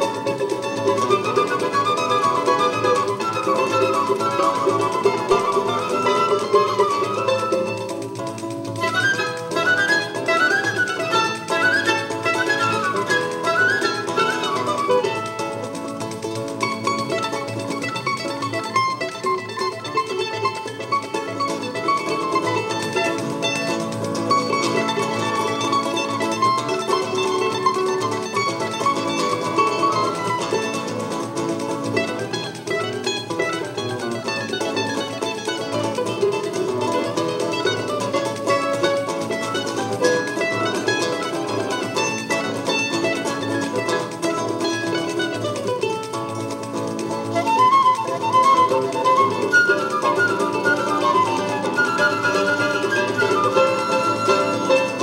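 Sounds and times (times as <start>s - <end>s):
flute: 0.0s - 31.2s, 32.0s - 45.7s, 47.2s - 55.0s
bandolim: 0.0s - 55.0s
pandeiro: 0.0s - 55.0s
seven-string guitar: 0.0s - 55.0s.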